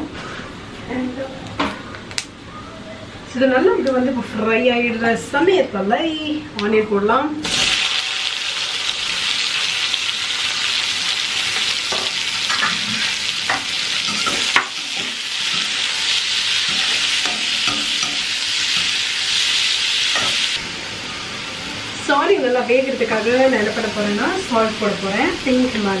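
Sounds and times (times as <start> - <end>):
onions sizzling in oil: 7.4 - 26.0.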